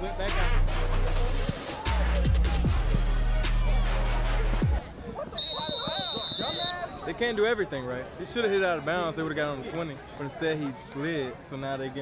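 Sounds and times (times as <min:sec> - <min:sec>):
referee's whistle: 0:05.3 - 0:06.9.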